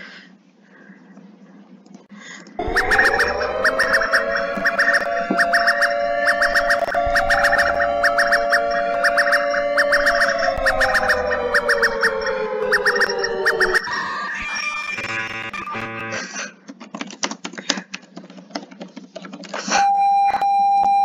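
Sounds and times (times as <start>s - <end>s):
fast high alarm beeps: 2.6s - 16.2s, 19.8s - 21.0s
low held alarm tone: 2.6s - 16.2s, 19.8s - 21.0s.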